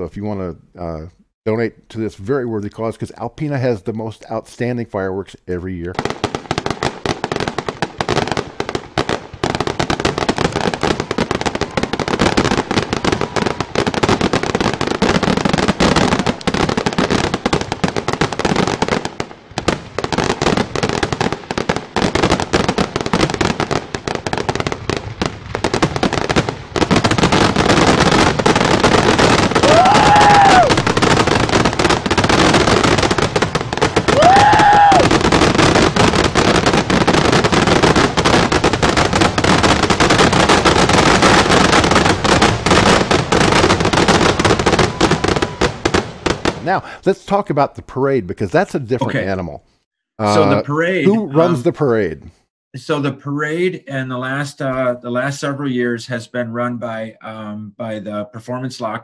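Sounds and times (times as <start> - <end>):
fireworks bangs and crackling: 5.9 - 47.6, 50.2 - 51.9.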